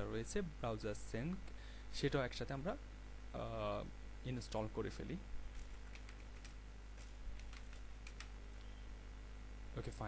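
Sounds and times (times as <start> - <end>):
low electrical hum: 0.0 - 10.0
keyboard keystroke clicks: 7.4 - 8.4.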